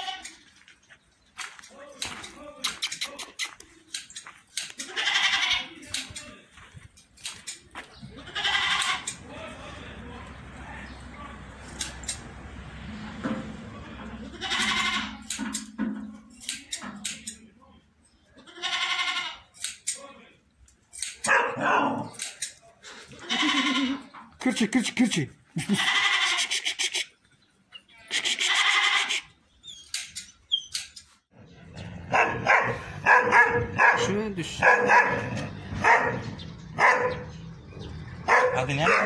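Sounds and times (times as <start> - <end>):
goats bleating: 0.0 - 0.4, 4.7 - 5.9, 8.0 - 10.9, 13.7 - 15.3, 18.4 - 19.5, 23.0 - 24.9, 25.5 - 27.1, 27.8 - 29.4
goat and sheep pen background: 0.0 - 39.0
sharp click: 11.7 - 12.3, 16.4 - 17.4, 19.6 - 20.0, 20.9 - 21.3, 22.1 - 22.6, 29.8 - 31.1.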